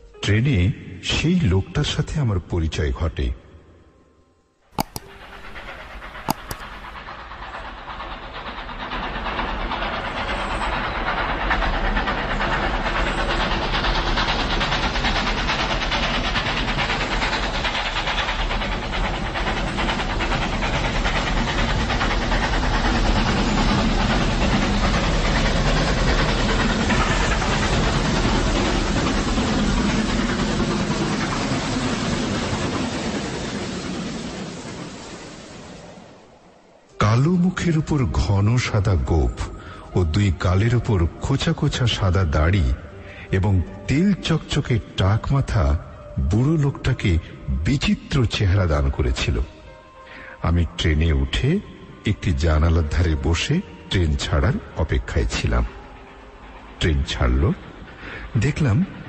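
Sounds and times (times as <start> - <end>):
train running on rails: 0.0 - 59.0
sharp clicks: 4.8 - 5.6, 6.2 - 6.9.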